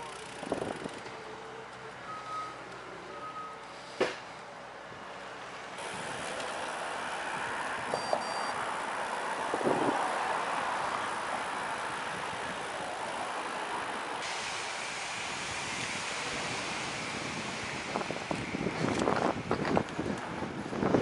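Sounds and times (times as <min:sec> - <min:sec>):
road traffic driving past: 0:00.0 - 0:21.0
rushing noise: 0:05.8 - 0:19.5.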